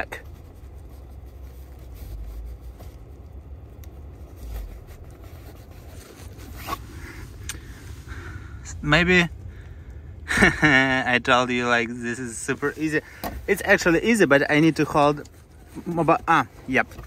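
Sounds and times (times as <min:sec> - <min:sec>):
low rumble: 0:00.0 - 0:12.8.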